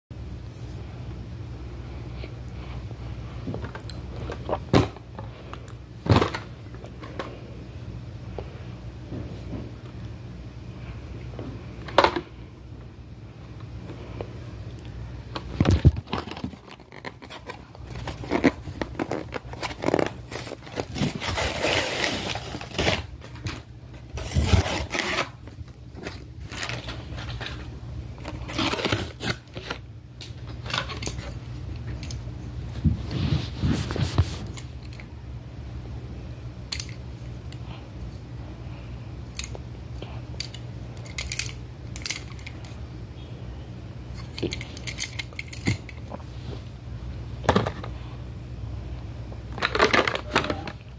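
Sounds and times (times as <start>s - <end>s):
plastic packaging being torn open: 15.6s - 25.4s, 28.2s - 29.8s.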